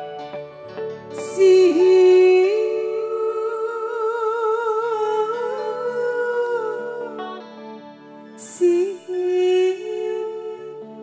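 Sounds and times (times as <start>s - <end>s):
soft keyboard and band: 0.0s - 3.3s
woman singing long note: 1.2s - 7.2s, 8.5s - 11.0s.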